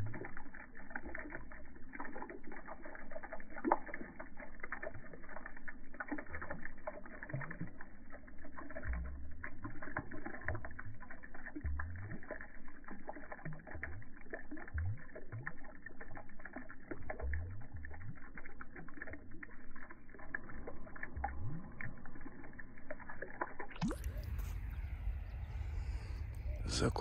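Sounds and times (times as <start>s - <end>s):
bubbles popping at water surface: 0.0s - 26.9s
low water gurgle: 0.0s - 27.0s.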